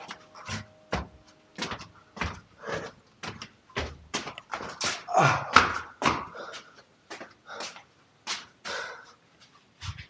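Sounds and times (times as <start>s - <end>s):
person breathing hard: 1.8s - 3.0s, 4.6s - 9.3s.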